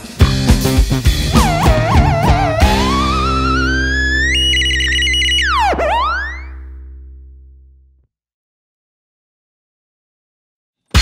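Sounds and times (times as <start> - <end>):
theremin gliding and warbling: 1.3 - 6.9.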